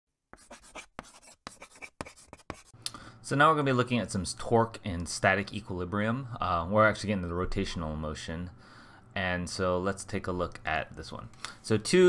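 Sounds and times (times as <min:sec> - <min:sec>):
chalk scratching on blackboard: 0:00.4 - 0:02.8.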